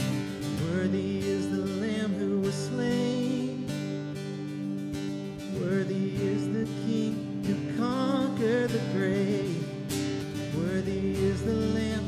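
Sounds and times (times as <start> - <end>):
worship music on acoustic guitar: 0.0 - 12.0.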